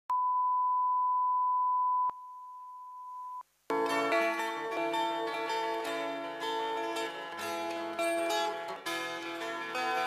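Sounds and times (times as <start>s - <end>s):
sine test tone: 0.1s - 3.4s.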